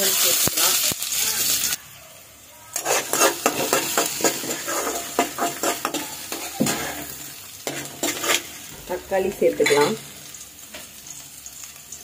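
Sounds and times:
onions sizzling in a pan: 0.0s - 12.0s
spoon scraping a pan: 2.7s - 11.0s.

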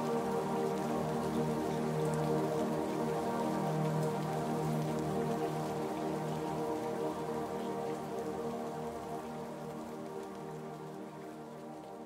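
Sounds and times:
ambient meditation music: 0.0s - 12.0s
rain falling: 0.0s - 12.0s.

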